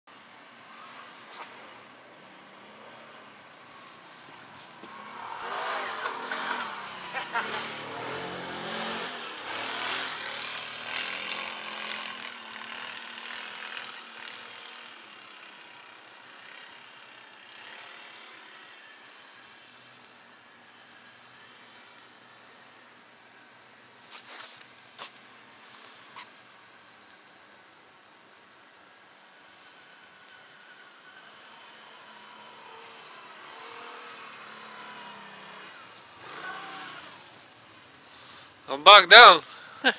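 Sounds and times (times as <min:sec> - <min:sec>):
atv engine driving away: 0:04.2 - 0:22.6, 0:29.7 - 0:38.7.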